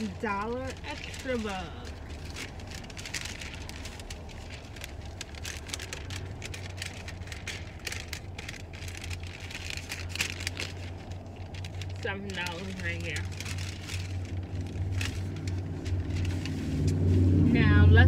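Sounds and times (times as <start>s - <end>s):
paper receipt rustling and crackling: 0.0s - 17.5s
low steady hum: 0.0s - 18.0s.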